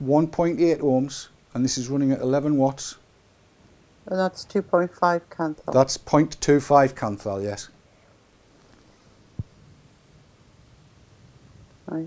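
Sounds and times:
soft low thump: 9.4s - 9.6s.

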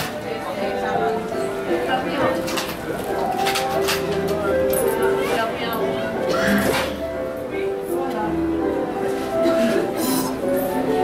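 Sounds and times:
shoppers' voices: 0.0s - 11.0s.

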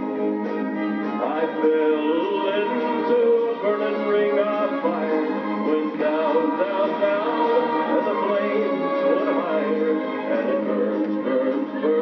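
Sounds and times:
country band with orchestra: 0.0s - 12.0s
guitar: 0.0s - 12.0s.

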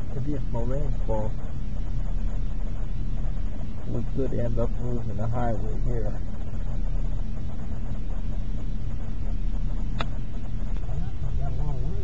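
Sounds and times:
car engine running: 0.0s - 12.0s
sharp click: 9.9s - 10.9s.

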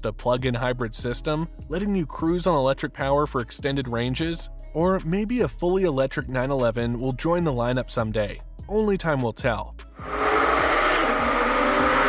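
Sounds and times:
car engine running loud: 10.0s - 12.0s.

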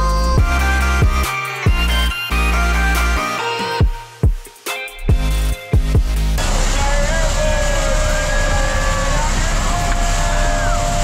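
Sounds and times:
people whooping and cheering: 6.6s - 11.0s.

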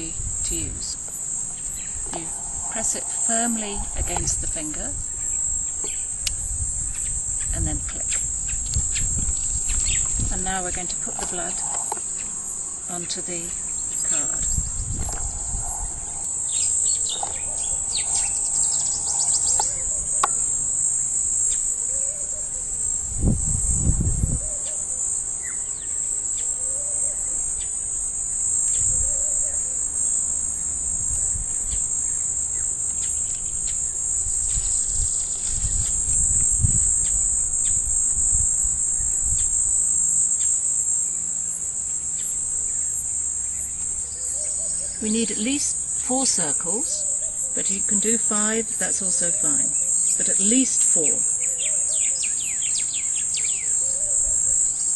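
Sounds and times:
insects chirping: 0.0s - 54.9s.

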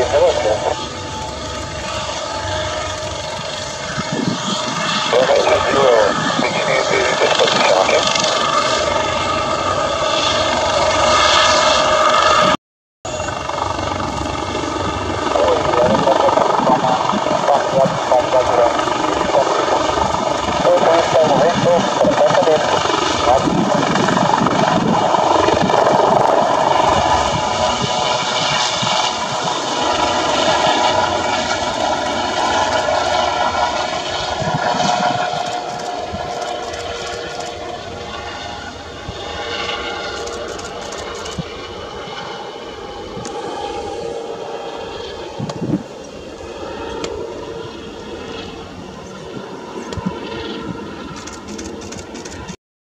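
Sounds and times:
helicopter turbine whine: 0.0s - 52.6s
main rotor beating: 0.0s - 52.6s.

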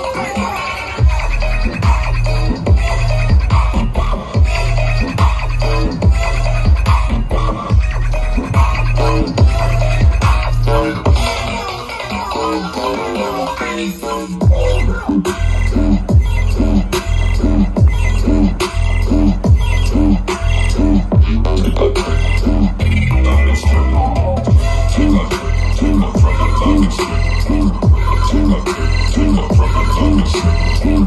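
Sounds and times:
electronic bass music: 0.1s - 31.0s.

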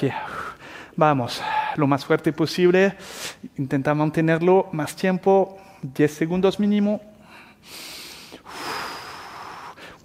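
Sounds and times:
man breathing forcefully: 0.2s - 1.8s, 7.3s - 10.0s.

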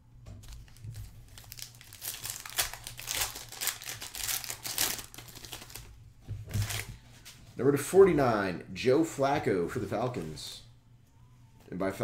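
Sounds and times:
foil wrapper crinkling and tearing: 0.4s - 6.0s.

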